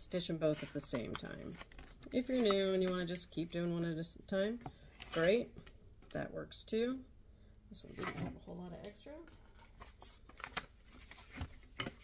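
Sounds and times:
faint paper rustles: 0.5s - 3.2s, 9.6s - 12.0s.

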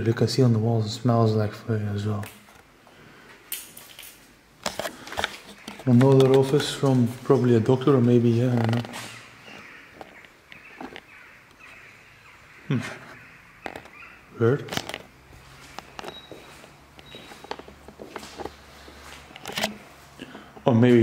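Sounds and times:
footsteps on tiled floor: 15.3s - 20.2s.

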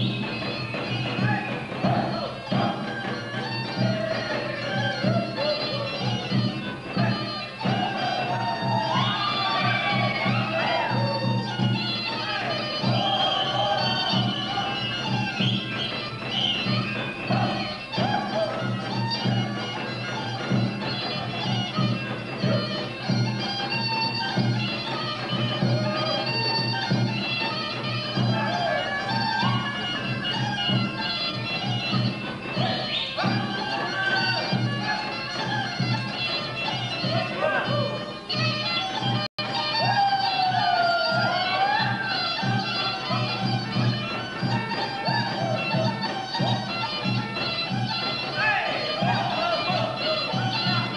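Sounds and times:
wind instrument melody: 0.0s - 50.9s.

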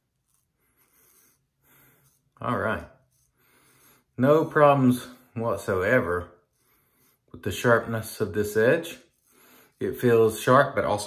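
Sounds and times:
razor scraping stubble: 0.0s - 4.9s, 5.5s - 11.0s.

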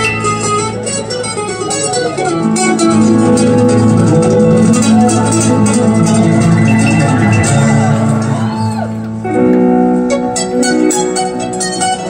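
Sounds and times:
acoustic guitars: 0.0s - 12.0s
keyboard chords: 0.0s - 12.0s.

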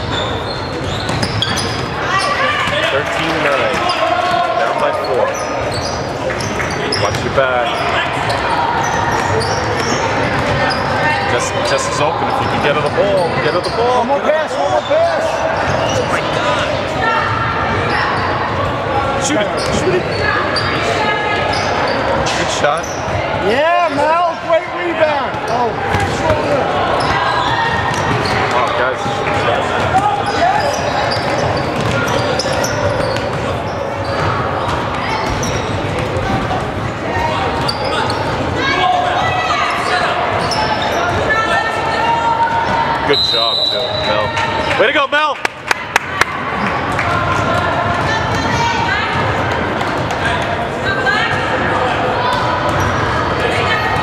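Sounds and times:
hubbub of voices in hall: 0.0s - 54.0s
basketball bouncing on court: 0.6s - 2.0s, 9.1s - 10.8s, 25.3s - 36.9s, 52.3s - 53.1s.

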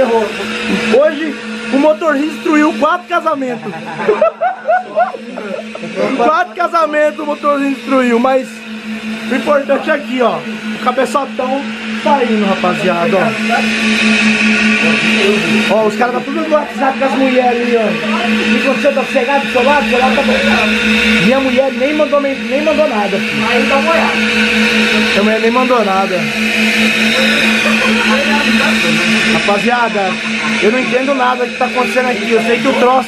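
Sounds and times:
suction motors humming: 0.0s - 33.0s.

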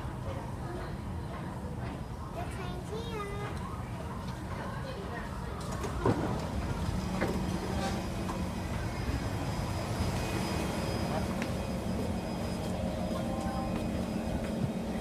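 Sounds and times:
murmur of passengers: 0.0s - 15.0s
train electrical hum: 0.0s - 15.0s.

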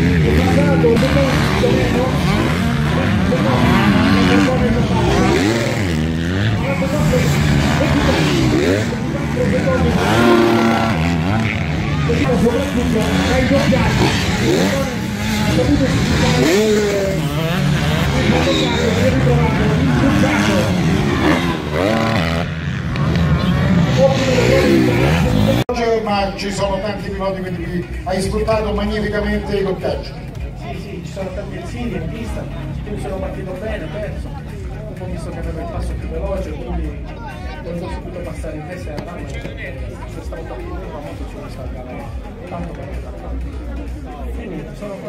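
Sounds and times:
dirt bike engines revving: 0.0s - 45.0s.

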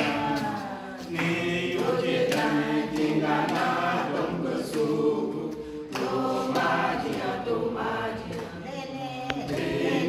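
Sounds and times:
congregation singing unaccompanied: 0.0s - 10.0s.

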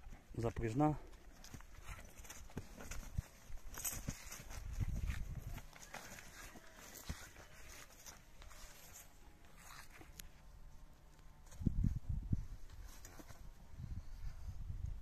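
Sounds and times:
horse hooves thudding: 0.0s - 10.2s.

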